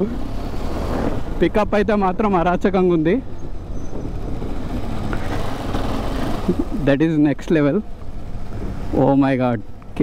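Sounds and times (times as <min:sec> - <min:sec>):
motorcycle engine running: 0:00.0 - 0:09.3
wind rush on microphone: 0:00.2 - 0:06.6.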